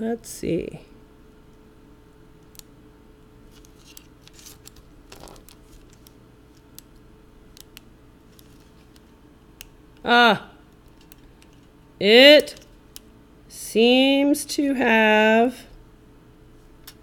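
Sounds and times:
low electrical hum: 0.0 - 17.0.

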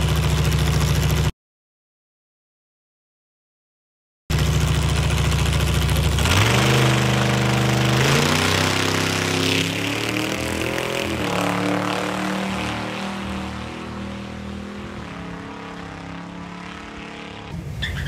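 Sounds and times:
dragster engine accelerating: 4.3 - 18.0.

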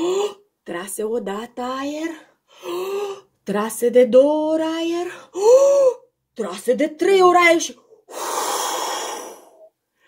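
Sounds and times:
woman blowing hard: 8.1 - 9.7.

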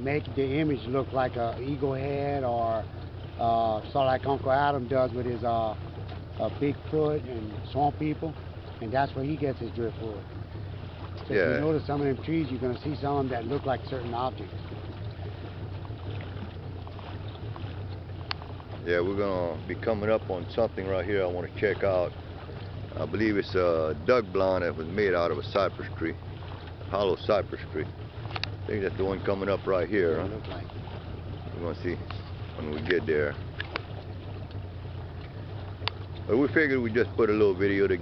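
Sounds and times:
small boat motor humming: 0.0 - 38.0
water wash: 0.0 - 38.0
sharp click: 28.3 - 28.6.

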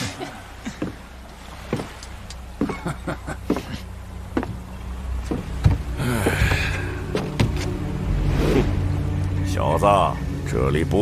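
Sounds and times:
wooden boats knocking and creaking: 0.0 - 7.9.

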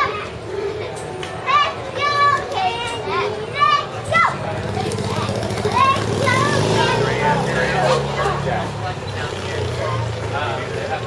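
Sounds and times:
high-pitched voices calling out: 0.0 - 10.2.

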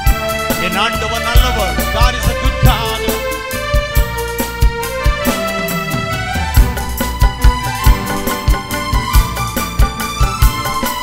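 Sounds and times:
electronic keyboard chords: 0.0 - 11.0
programmed drum beat: 0.1 - 10.6
man singing through microphone: 0.6 - 3.5.

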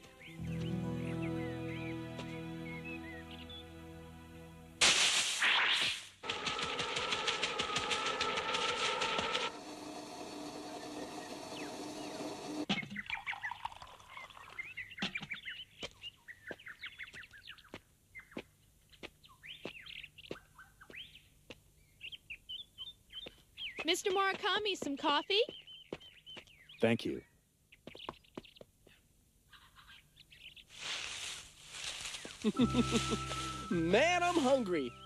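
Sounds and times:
birds chirping: 0.0 - 4.1, 10.3 - 30.7, 32.0 - 35.0
birds flapping wings: 5.4 - 9.6.

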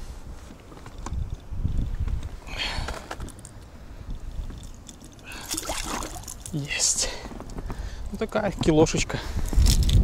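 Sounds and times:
water splashing: 5.3 - 6.5.

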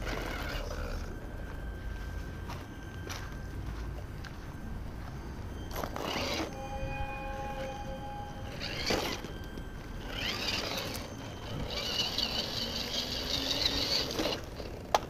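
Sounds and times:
electric motor and gearbox whining: 0.0 - 15.0.

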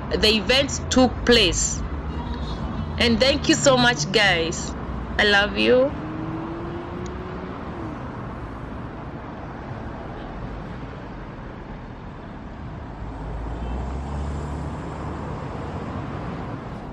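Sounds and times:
vehicle passing engine rumble: 0.0 - 9.6, 12.8 - 16.9
road traffic noise: 0.0 - 16.9.

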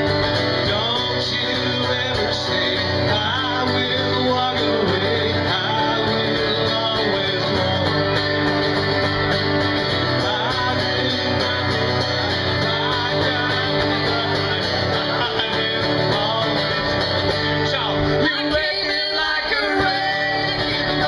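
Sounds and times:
acoustic guitar strumming: 0.0 - 21.0
person singing: 10.0 - 21.0.

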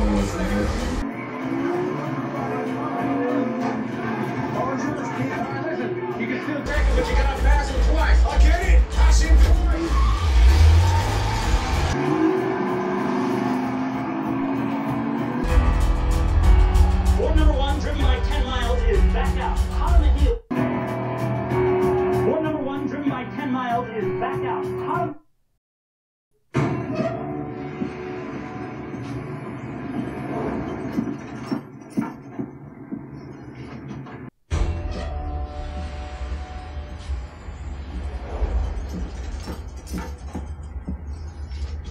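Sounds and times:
race car engines: 0.0 - 15.6
film music: 0.0 - 25.1, 26.5 - 31.4, 34.5 - 41.9.

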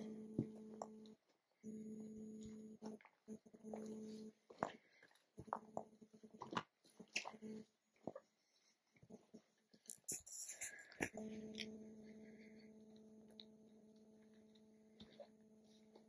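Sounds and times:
steady low hum: 0.0 - 7.8, 10.1 - 16.0.

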